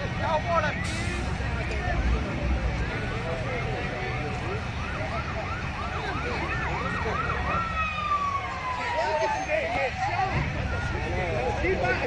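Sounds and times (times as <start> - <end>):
emergency siren yelping: 3.1 - 12.0
long gliding siren tone: 3.9 - 11.4.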